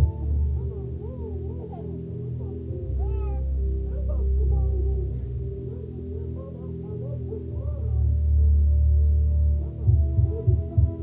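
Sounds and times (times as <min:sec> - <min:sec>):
soft ambient music: 0:00.0 - 0:11.0
baby squeaks: 0:03.0 - 0:03.4
baby squealing: 0:03.0 - 0:03.4.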